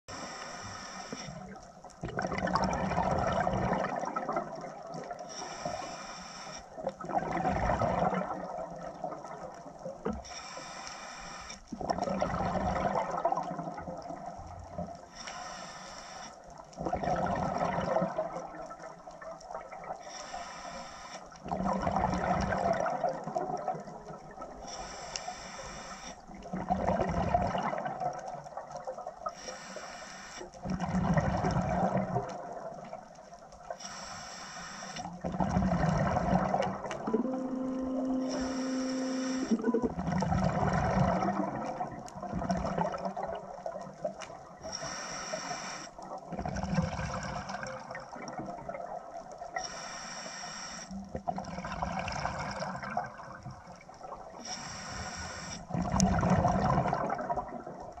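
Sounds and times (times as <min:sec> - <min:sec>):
regulator inhale hiss: 0:00.1 - 0:01.5, 0:05.3 - 0:06.8, 0:10.2 - 0:11.6, 0:15.1 - 0:16.4, 0:20.0 - 0:21.4, 0:24.6 - 0:26.2, 0:29.3 - 0:30.5, 0:33.8 - 0:35.1, 0:38.2 - 0:39.6, 0:44.6 - 0:46.0, 0:49.6 - 0:51.0, 0:54.4 - 0:55.7
exhaled bubbles burbling: 0:01.4 - 0:05.2, 0:06.8 - 0:10.0, 0:11.8 - 0:14.9, 0:16.8 - 0:20.0, 0:21.4 - 0:24.6, 0:26.3 - 0:29.2, 0:30.6 - 0:33.2, 0:35.1 - 0:44.6, 0:46.0 - 0:49.5, 0:51.1 - 0:54.4, 0:55.7 - 0:58.0.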